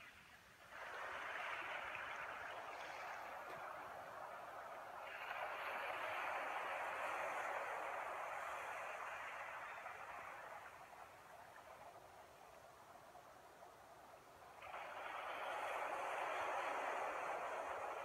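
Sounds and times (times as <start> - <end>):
steady rushing noise: 0.0 - 18.0.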